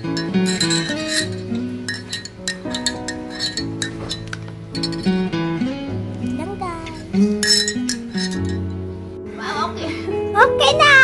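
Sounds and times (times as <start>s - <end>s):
sharp bright clinks: 0.0s - 5.2s, 6.9s - 8.8s
instrumental background music: 0.0s - 11.0s.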